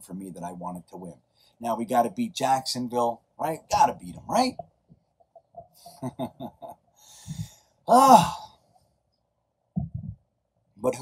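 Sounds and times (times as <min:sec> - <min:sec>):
man laughing: 0:05.9 - 0:06.8.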